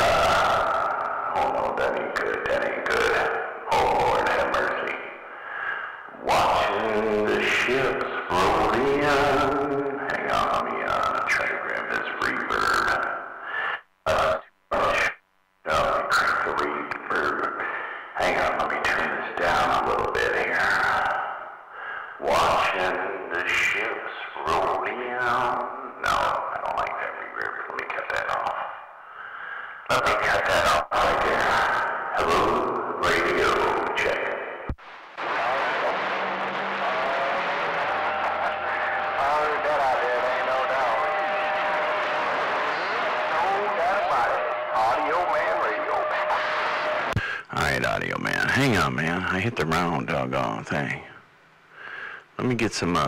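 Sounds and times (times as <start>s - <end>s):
man's voice with heavy echo: 0.0s - 51.2s
radio static: 33.4s - 51.0s.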